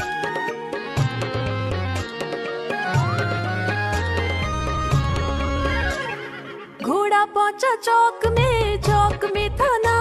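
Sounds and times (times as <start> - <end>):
instrumental music with bass line: 0.0 - 6.4, 8.3 - 10.0.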